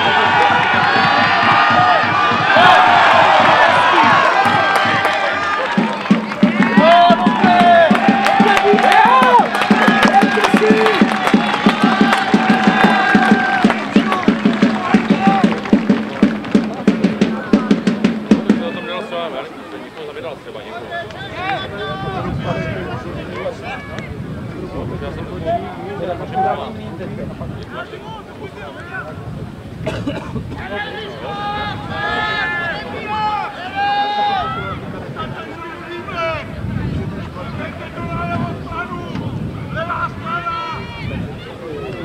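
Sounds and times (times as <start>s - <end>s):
drum beating steadily: 0.0s - 19.3s
crowd cheering and shouting: 0.0s - 20.0s, 20.6s - 26.7s, 30.6s - 42.0s.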